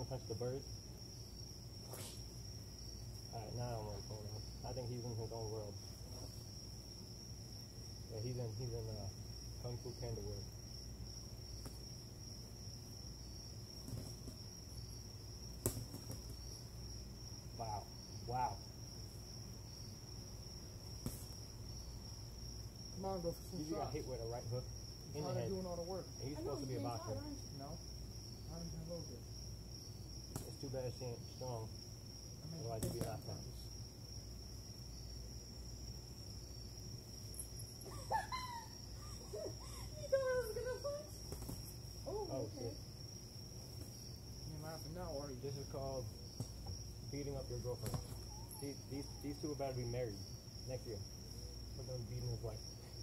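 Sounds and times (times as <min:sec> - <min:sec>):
crickets chirping: 0:00.0 - 0:53.0
low outdoor hum: 0:00.0 - 0:53.0
sharp smack: 0:01.8 - 0:02.2, 0:15.6 - 0:16.3, 0:21.0 - 0:21.4, 0:30.3 - 0:30.6, 0:32.8 - 0:33.2
person's voice: 0:26.3 - 0:27.4.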